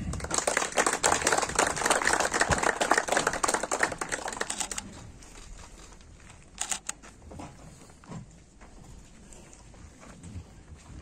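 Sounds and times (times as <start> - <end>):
crowd applauding: 0.0 - 4.8.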